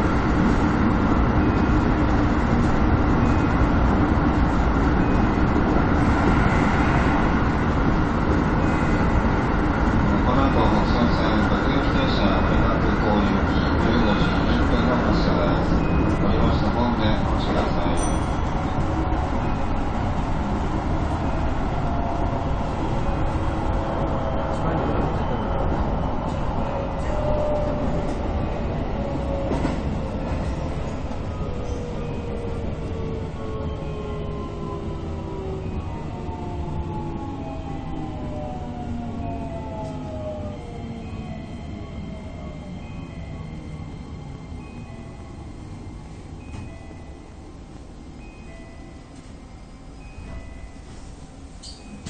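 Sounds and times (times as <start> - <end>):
electric train rumbling: 0.0 - 52.0.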